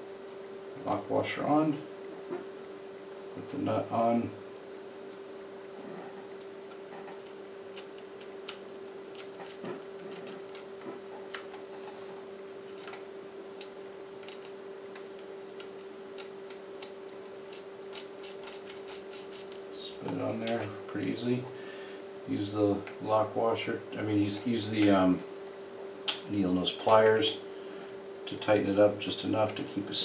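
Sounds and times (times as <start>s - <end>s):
steady hum: 0.0s - 30.0s.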